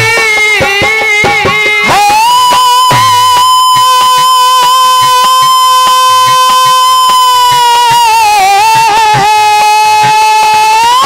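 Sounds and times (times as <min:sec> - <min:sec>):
hand drum beat: 0:00.0 - 0:11.0
man singing long high note: 0:00.0 - 0:11.0.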